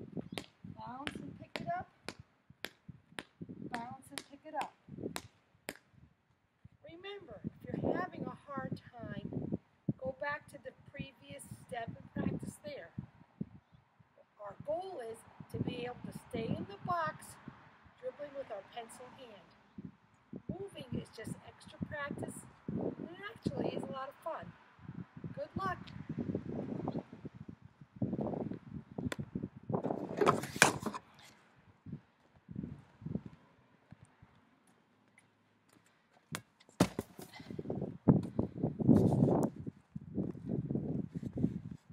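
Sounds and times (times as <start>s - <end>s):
basketball bouncing on asphalt: 0.2s - 6.0s, 29.0s - 31.0s, 35.7s - 37.4s.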